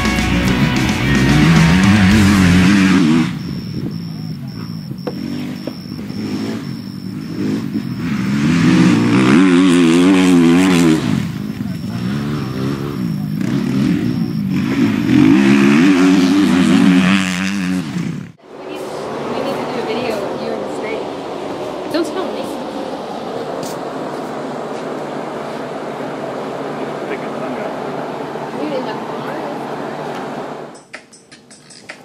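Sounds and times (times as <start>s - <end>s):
dirt bike engines revving: 0.0s - 31.0s.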